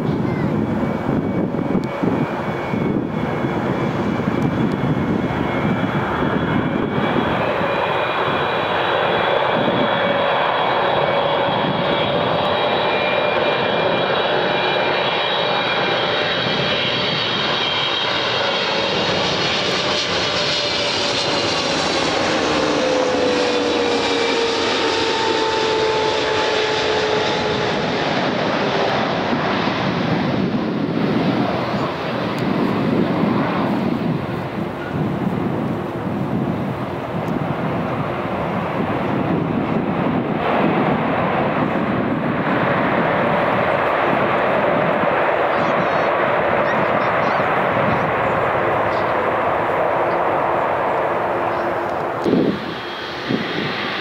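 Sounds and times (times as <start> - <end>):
high fan whine: 0.0 - 12.6, 18.9 - 54.0
jet engine roar: 0.0 - 54.0.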